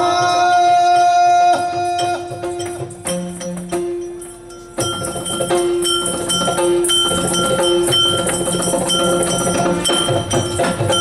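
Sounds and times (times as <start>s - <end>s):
hand drum strokes: 0.0s - 11.0s
ringing hand cymbals: 0.0s - 11.0s
jingling bells: 0.8s - 11.0s.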